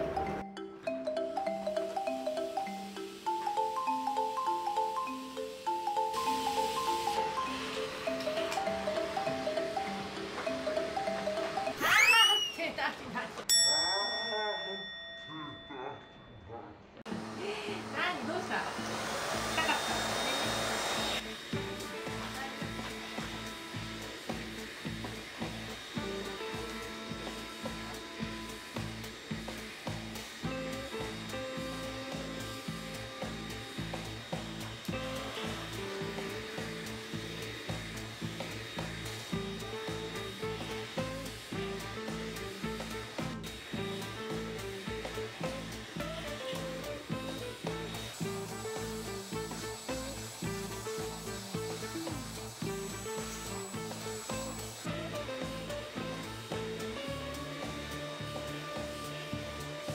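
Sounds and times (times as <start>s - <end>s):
background music with steady beat: 0.0s - 11.8s, 21.2s - 59.9s
vacuum motor whining: 17.1s - 59.9s.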